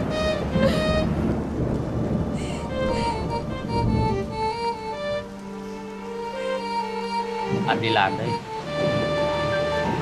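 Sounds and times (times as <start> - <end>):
low rumble and hiss: 0.0 - 10.0
quiet background music: 0.0 - 10.0
woman sobbing: 2.4 - 3.2.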